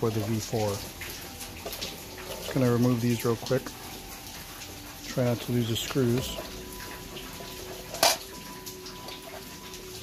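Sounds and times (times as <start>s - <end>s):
metal cover scraping: 7.9s - 8.3s.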